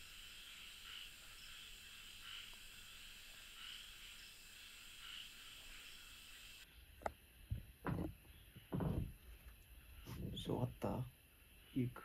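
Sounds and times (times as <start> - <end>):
night insects chirring: 0.0 - 12.0.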